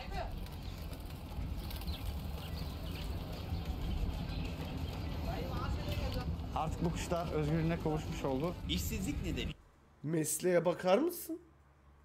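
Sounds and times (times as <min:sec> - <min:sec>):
low outdoor rumble: 0:00.0 - 0:10.0
parakeets chirping: 0:00.4 - 0:06.2.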